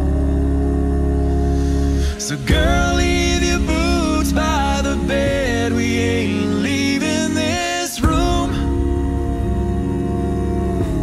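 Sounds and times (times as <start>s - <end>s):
deep bass voice: 0.0s - 11.0s
vocal group singing a chord: 0.0s - 11.0s.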